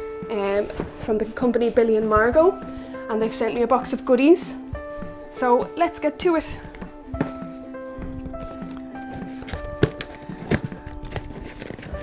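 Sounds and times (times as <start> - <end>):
soft music with held notes: 0.0 - 12.0.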